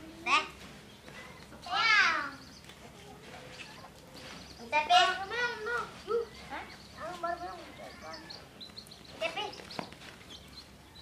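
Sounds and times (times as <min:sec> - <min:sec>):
baby chicks peeping: 0:00.0 - 0:11.0
child's voice: 0:01.5 - 0:03.3, 0:04.6 - 0:08.2.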